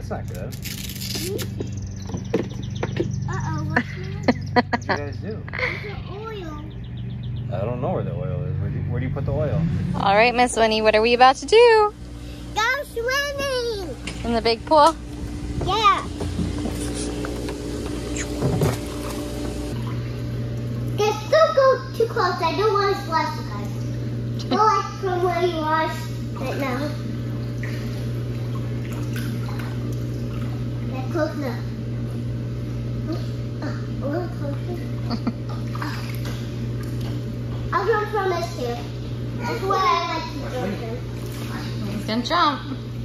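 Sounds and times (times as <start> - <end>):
pool filter pump hum: 0.0 - 43.0
faint water noise: 9.6 - 43.0.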